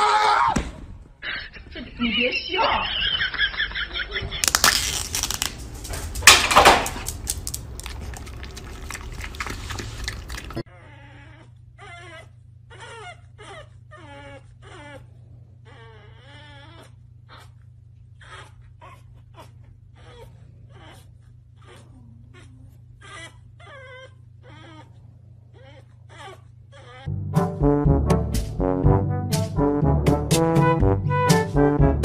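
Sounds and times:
puppy whining and whimpering: 0:08.3 - 0:27.1.

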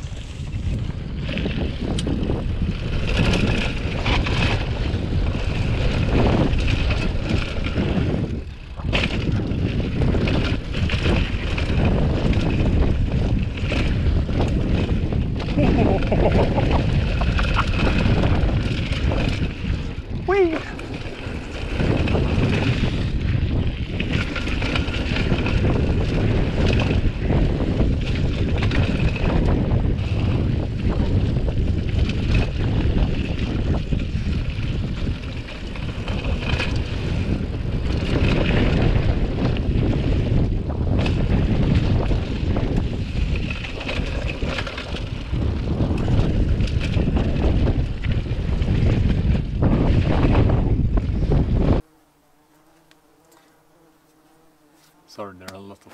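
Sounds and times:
wind rush on microphone: 0:00.0 - 0:52.1
bike rattling over bumps: 0:00.0 - 0:52.6
tyres rolling over gravel: 0:41.2 - 0:50.5.

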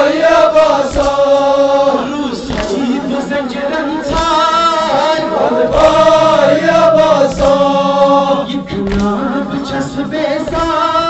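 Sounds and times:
voices chanting along: 0:00.0 - 0:10.7
man chanting through loudspeaker: 0:02.0 - 0:10.0.

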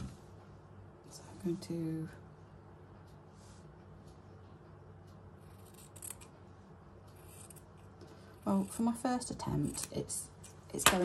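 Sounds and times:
scissors snipping fabric: 0:05.4 - 0:06.3, 0:07.1 - 0:11.0.

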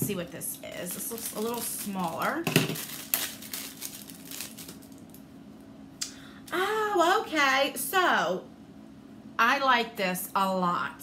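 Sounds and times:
packaging rustling: 0:00.0 - 0:05.2
low steady hum: 0:00.0 - 0:11.0.

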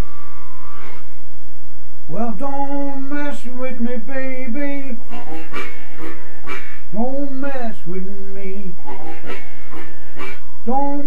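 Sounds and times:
harmonica note: 0:00.0 - 0:01.2, 0:05.0 - 0:07.6, 0:08.4 - 0:11.0
loud low electrical hum: 0:00.0 - 0:11.0.

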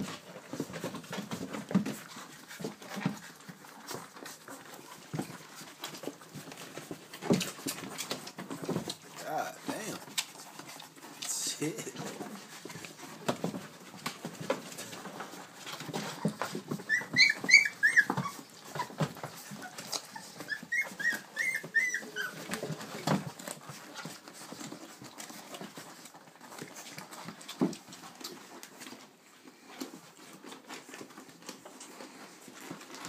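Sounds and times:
scuffling and rustling: 0:00.0 - 0:33.0
puppies squealing: 0:16.1 - 0:22.7.

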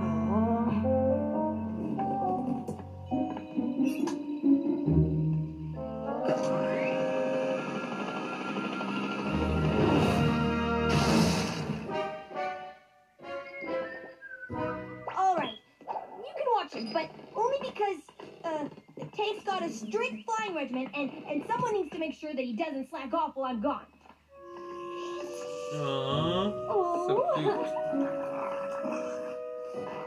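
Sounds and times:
cartoon music from tv: 0:00.0 - 0:17.8, 0:24.3 - 0:30.0.

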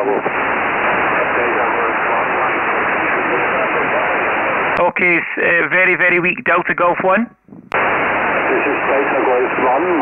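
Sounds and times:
radio band noise hiss: 0:00.0 - 0:10.0
weak radio voice: 0:00.0 - 0:10.0.

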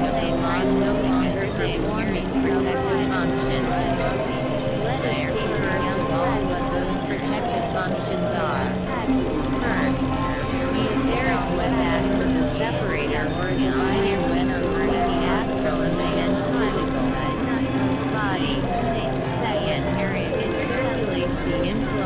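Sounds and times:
dense noisy bed: 0:00.0 - 0:22.0
held synthesizer tones: 0:00.0 - 0:22.0.

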